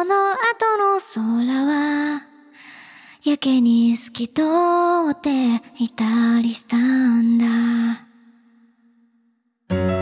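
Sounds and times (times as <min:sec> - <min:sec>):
woman singing softly: 0:00.0 - 0:02.4, 0:03.2 - 0:08.1.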